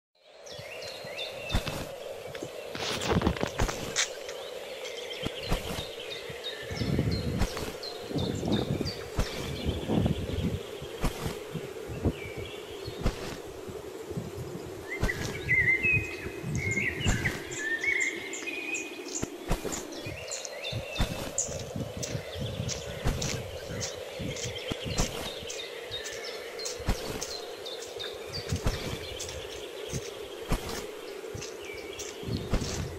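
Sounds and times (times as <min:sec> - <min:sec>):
birds singing: 0:00.2 - 0:32.9
low hum and hiss: 0:00.2 - 0:32.9
bird whistling: 0:14.9 - 0:18.8.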